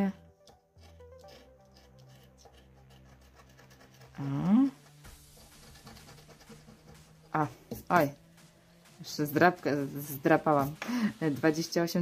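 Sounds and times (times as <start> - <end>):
spoon scraping scratch card: 0.4 - 8.5.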